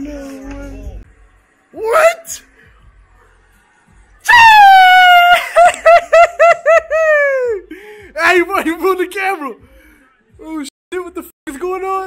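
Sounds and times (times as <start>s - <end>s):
person screaming in excitement: 4.3s - 5.8s, 6.9s - 7.6s.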